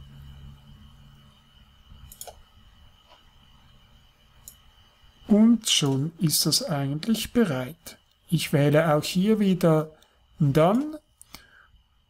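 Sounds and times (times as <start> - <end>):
faint steady hum: 0.0 - 12.0
computer mouse clicks: 2.1 - 2.4.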